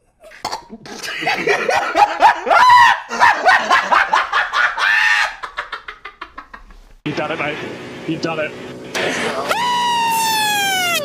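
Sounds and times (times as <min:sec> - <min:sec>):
high-pitched vocal bursts: 0:09.3 - 0:11.0.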